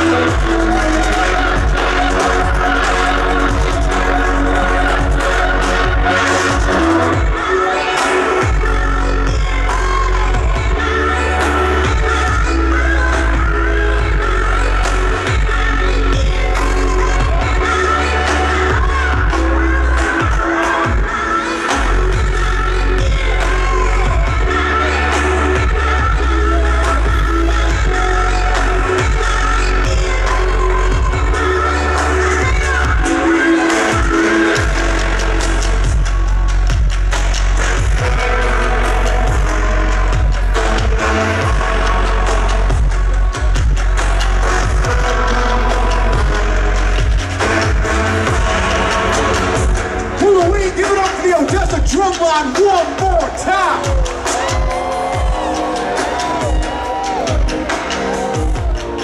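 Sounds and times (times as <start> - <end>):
electronic dance music: 0.0 - 59.0
heavy sub-bass: 0.0 - 59.0.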